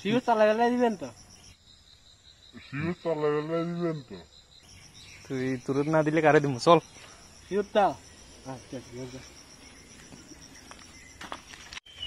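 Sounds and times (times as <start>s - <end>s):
insects chirping: 0.0s - 12.0s.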